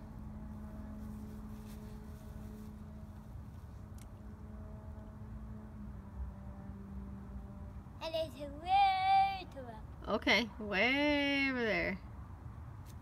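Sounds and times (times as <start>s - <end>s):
mechanical hum and rumble: 0.0s - 8.1s.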